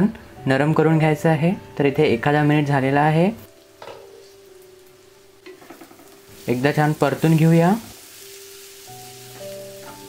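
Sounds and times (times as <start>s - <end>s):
food sizzling in a pan: 3.5s - 10.0s.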